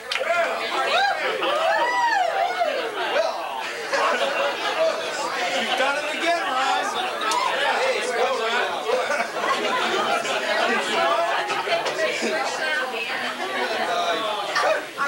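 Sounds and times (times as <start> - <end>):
overlapping adult chatter: 0.0 - 15.0.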